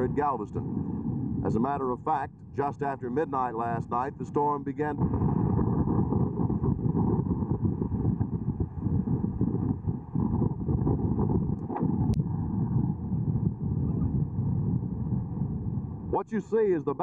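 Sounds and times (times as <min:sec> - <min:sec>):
storm wind buffeting microphone: 0:00.0 - 0:17.0.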